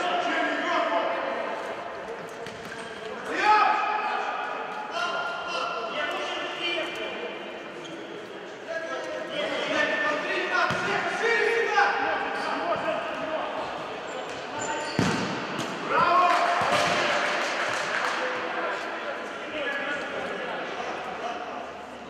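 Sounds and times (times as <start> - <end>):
players shouting: 14.9 - 18.3
ball kicked and bouncing: 15.0 - 15.7.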